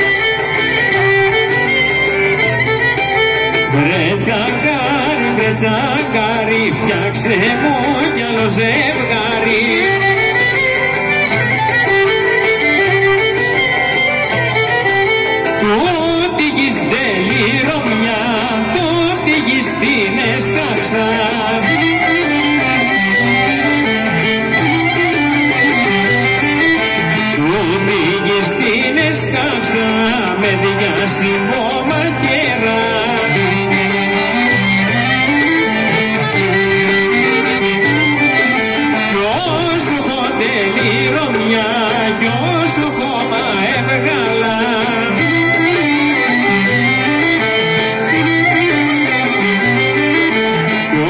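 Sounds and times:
folk band playing: 0.0s - 51.0s
plucked strings melody: 0.0s - 51.0s.

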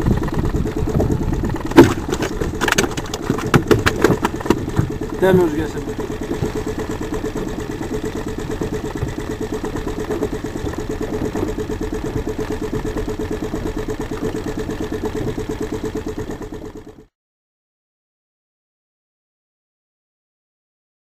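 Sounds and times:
outboard motor idling: 0.0s - 17.1s.

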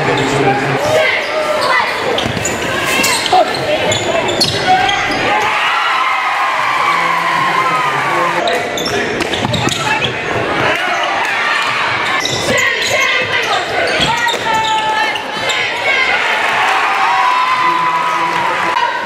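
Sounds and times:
crowd voices and shouts: 0.0s - 19.0s
basketball bouncing on court: 9.2s - 10.8s.

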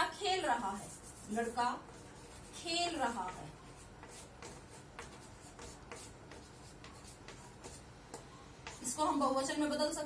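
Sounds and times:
chalk scratching on blackboard: 0.4s - 7.9s.

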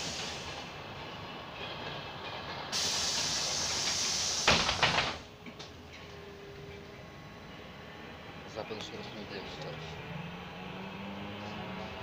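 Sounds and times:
loud hiss: 0.0s - 0.6s, 2.7s - 5.2s.

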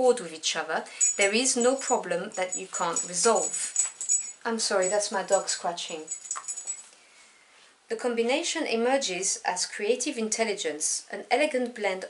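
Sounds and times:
collar tags jingling: 0.9s - 6.9s.

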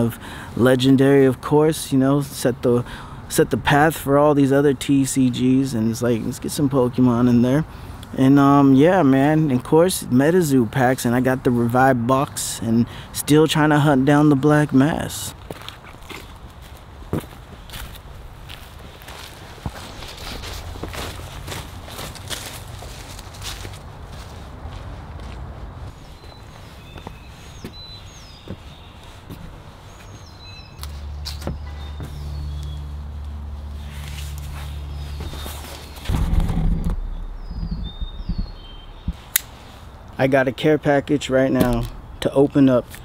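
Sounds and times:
footsteps in dry leaves: 15.4s - 36.3s
faint bird chirps: 37.0s - 39.2s
sharp click: 39.3s - 39.5s.

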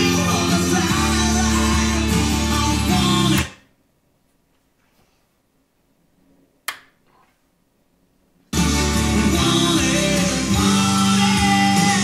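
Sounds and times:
music from stereo: 0.0s - 3.6s, 8.5s - 12.0s.

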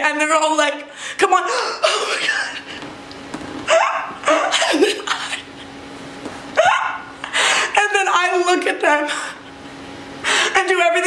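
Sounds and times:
woman mock sobbing: 6.6s - 7.8s.

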